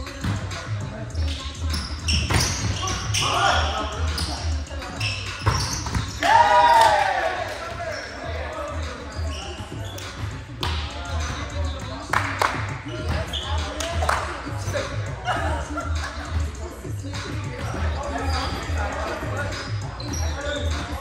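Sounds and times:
music with pulsing bass beat: 0:08.2 - 0:21.0.

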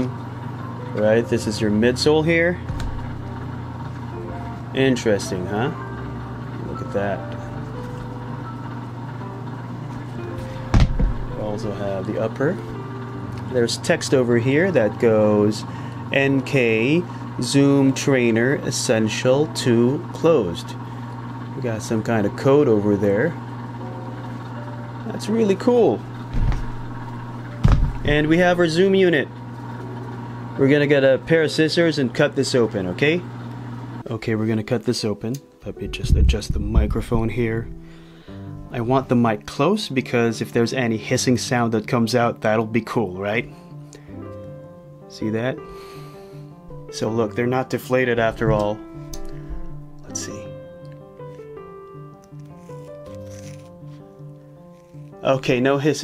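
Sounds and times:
steady low hum: 0:00.0 - 0:34.5, 0:35.6 - 0:39.5, 0:43.4 - 0:55.2
background music with held notes: 0:00.0 - 0:56.0
dull low thumps: 0:02.6 - 0:03.4, 0:26.2 - 0:28.4, 0:35.9 - 0:37.9
scissors snipping: 0:52.2 - 0:53.8.

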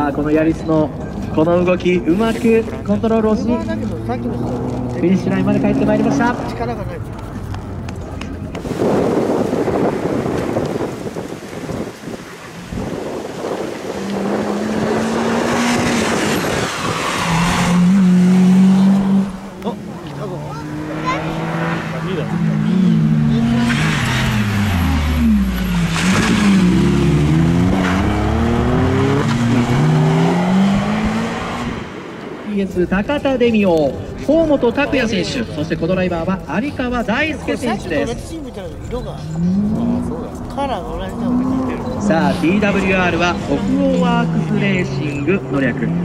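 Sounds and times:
tyre and road noise: 0:00.0 - 0:46.0
rally car engine revving: 0:01.0 - 0:32.5, 0:39.1 - 0:46.0.

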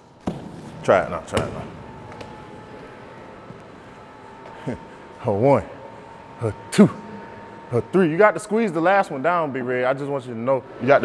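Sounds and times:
faint steady whine: 0:00.0 - 0:11.0
gym background hum: 0:00.0 - 0:11.0.

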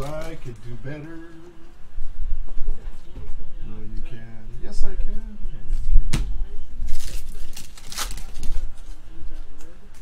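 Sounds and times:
foil pack ripping open: 0:06.9 - 0:08.7.

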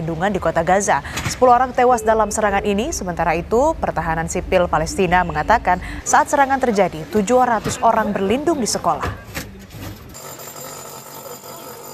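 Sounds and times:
steady ringing tone: 0:10.1 - 0:11.9.

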